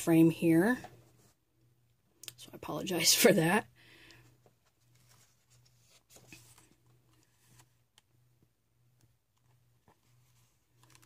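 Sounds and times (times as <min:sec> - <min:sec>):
book pages turning: 0:04.4 - 0:08.1, 0:09.3 - 0:11.0.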